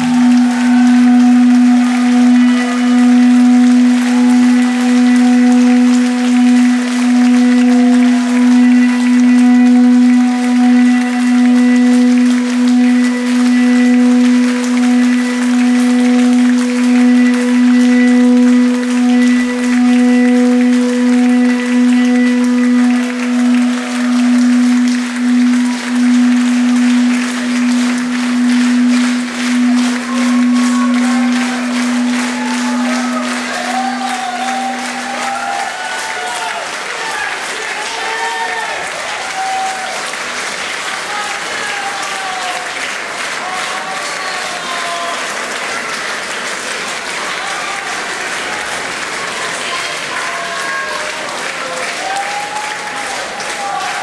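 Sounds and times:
held pulsing note of song: 0:00.0 - 0:40.1
audience applause: 0:00.0 - 0:54.0.

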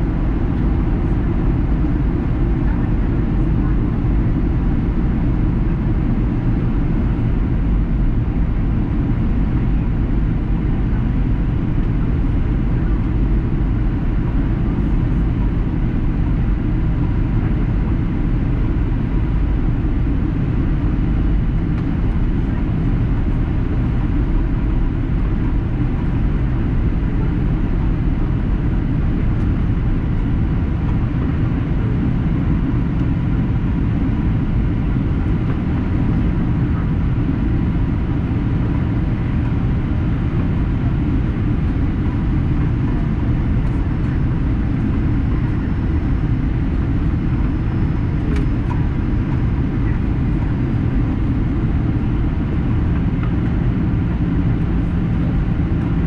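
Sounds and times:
airplane cabin engine noise: 0:00.0 - 0:56.0.

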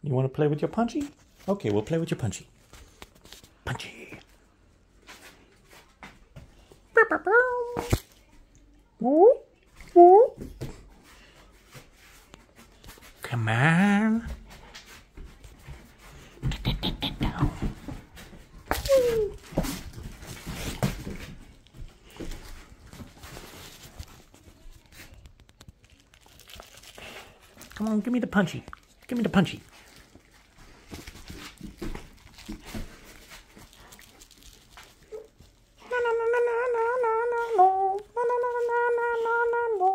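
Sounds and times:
dog scuffling with plush toy: 0:17.3 - 0:25.2.

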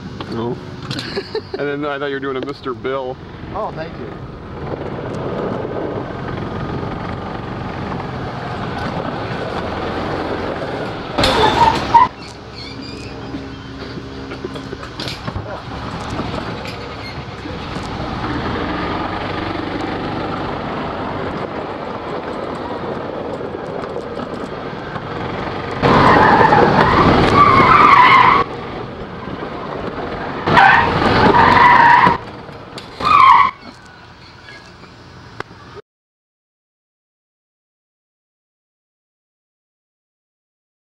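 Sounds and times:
golf cart driving fast: 0:00.0 - 0:35.8
tyres squealing: 0:11.1 - 0:18.7, 0:25.8 - 0:28.5, 0:30.3 - 0:35.0.

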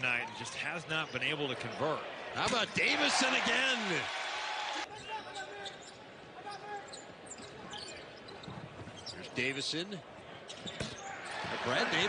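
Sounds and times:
murmuring arena crowd: 0:00.0 - 0:12.0.

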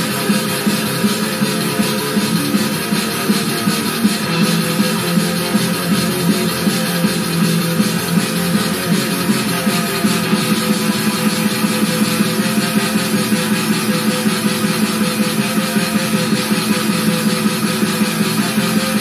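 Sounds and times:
electric guitar metal riff: 0:00.0 - 0:19.0.

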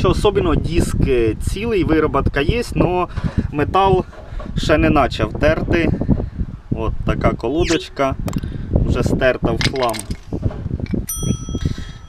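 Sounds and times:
bright bell ding: 0:07.7 - 0:08.1, 0:11.1 - 0:12.0.

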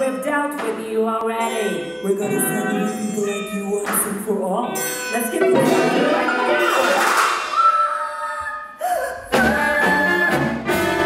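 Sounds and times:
chamber ensemble music: 0:01.4 - 0:08.1.

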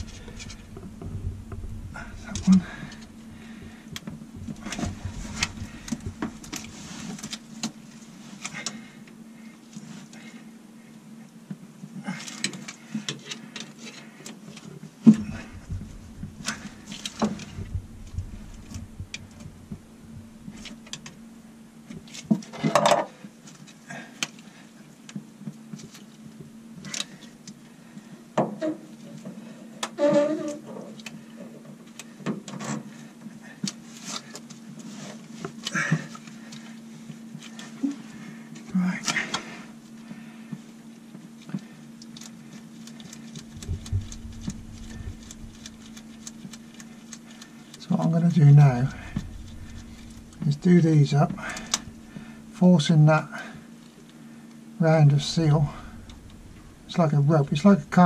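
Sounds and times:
low hum: 0:00.0 - 0:09.0, 0:15.0 - 0:22.2, 0:42.8 - 0:58.0.

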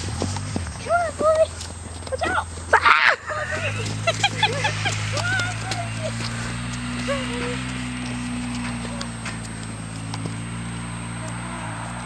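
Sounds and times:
horse hooves clopping: 0:00.0 - 0:12.0.

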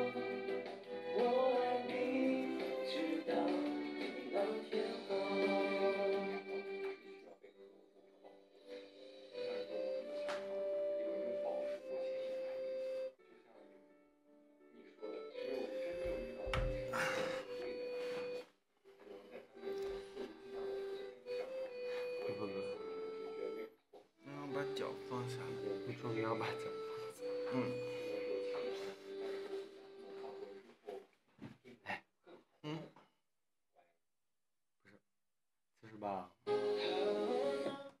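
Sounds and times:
pop song: 0:00.0 - 0:06.9, 0:36.8 - 0:38.0.

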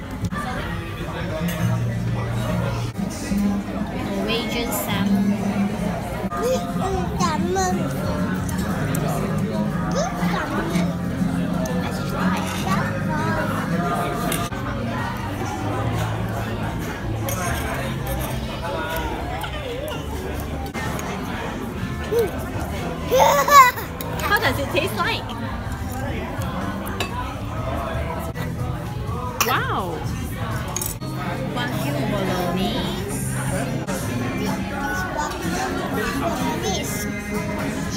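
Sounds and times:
background music: 0:00.0 - 0:37.9
voices chattering: 0:00.0 - 0:37.9.

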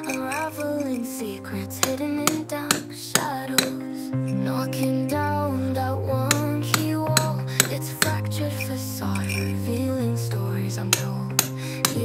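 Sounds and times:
indie music track: 0:00.0 - 0:12.0.

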